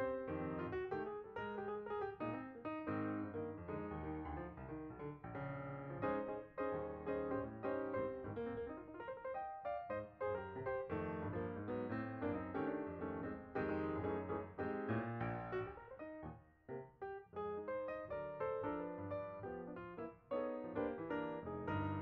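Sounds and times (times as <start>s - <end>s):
piano music: 0.0s - 22.0s.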